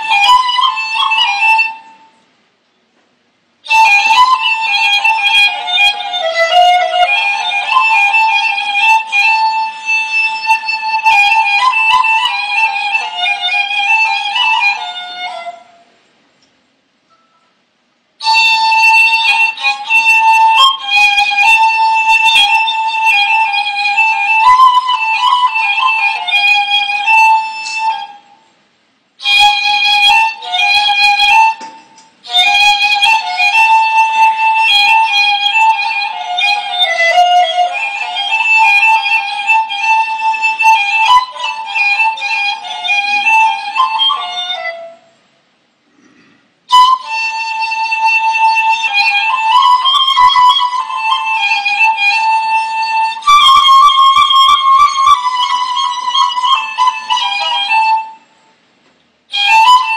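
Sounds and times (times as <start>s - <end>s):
end-blown reed flute melody: 3.6s - 15.6s, 18.2s - 28.4s, 46.7s - 58.2s.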